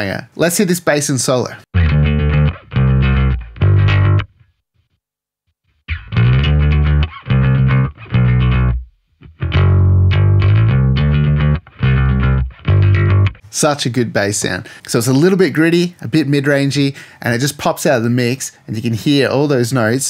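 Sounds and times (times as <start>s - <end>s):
electric bass guitar riff: 1.8s - 4.4s, 5.9s - 13.4s.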